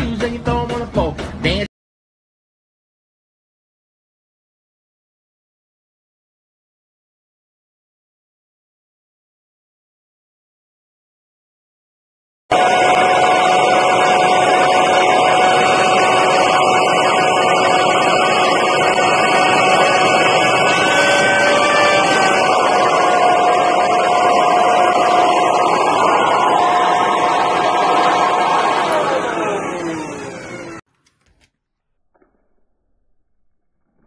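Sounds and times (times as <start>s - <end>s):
blower-vacuum motor whining: 12.5s - 30.9s.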